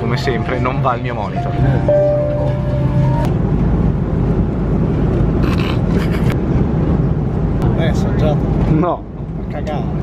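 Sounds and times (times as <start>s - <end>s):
music cue: 0.0s - 3.3s.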